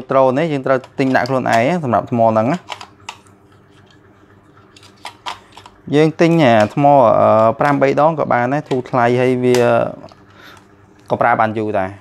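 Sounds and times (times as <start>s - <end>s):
man talking: 0.0s - 2.7s, 5.8s - 10.1s, 11.1s - 12.0s.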